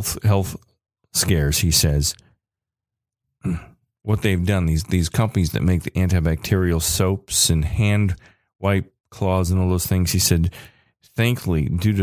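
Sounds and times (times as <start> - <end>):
man speaking: 0.0 - 0.6, 1.2 - 2.2, 3.5 - 12.0
man sighing: 3.4 - 3.8.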